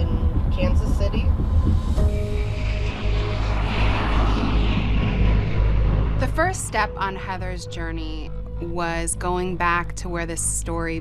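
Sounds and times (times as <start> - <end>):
airplane engine rumble: 0.0 - 11.0
background music: 0.0 - 11.0.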